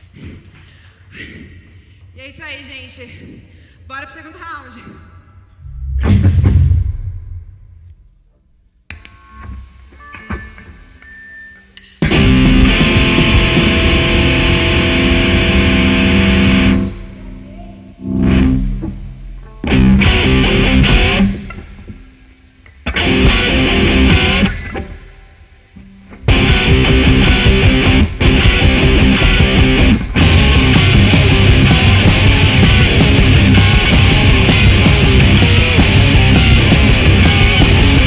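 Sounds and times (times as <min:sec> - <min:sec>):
drums: 0:04.8 - 0:17.2, 0:18.0 - 0:25.1, 0:26.2 - 0:38.0
distorted electric guitar: 0:08.9 - 0:38.0.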